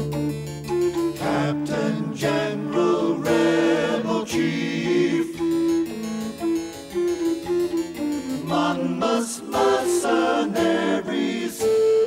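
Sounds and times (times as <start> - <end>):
harpsichord melody: 0.0 - 12.0.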